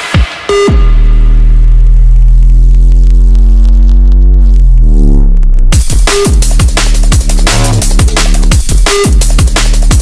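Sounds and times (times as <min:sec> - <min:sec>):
sustained synth bass note: 0:00.7 - 0:05.8.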